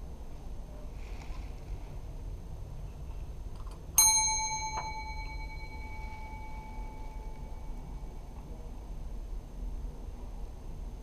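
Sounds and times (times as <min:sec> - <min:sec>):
service bell ding: 0:04.0 - 0:08.4.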